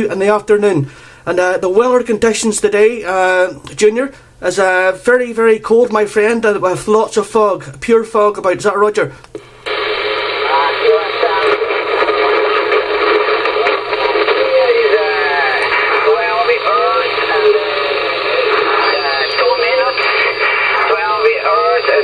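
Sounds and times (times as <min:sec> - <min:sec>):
radio static hiss: 0:09.4 - 0:22.0
voice over radio speaker: 0:09.7 - 0:22.0.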